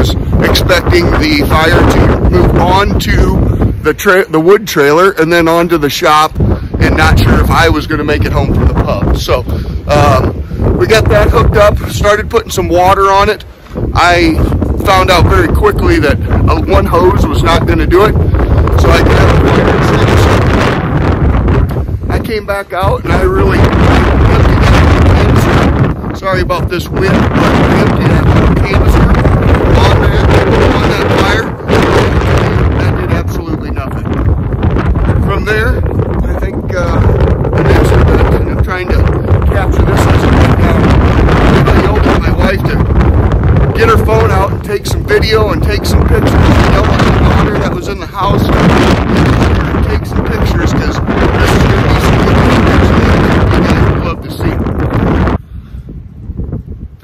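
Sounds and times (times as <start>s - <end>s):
man talking: 0.0s - 20.8s, 22.1s - 34.3s, 35.1s - 42.9s, 43.7s - 54.7s
man's voice: 0.0s - 20.8s, 22.1s - 34.2s, 35.1s - 42.9s, 43.7s - 54.7s
wind buffeting the microphone: 0.0s - 57.0s.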